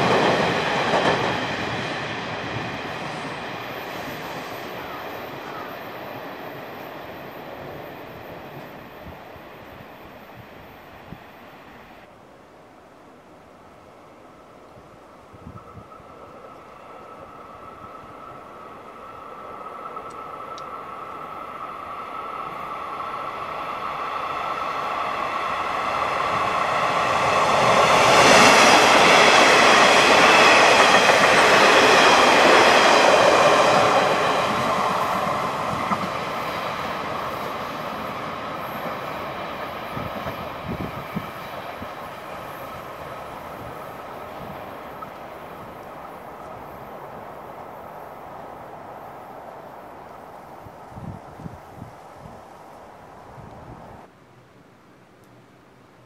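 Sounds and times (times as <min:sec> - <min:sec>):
train passing: 0:00.0 - 0:54.2.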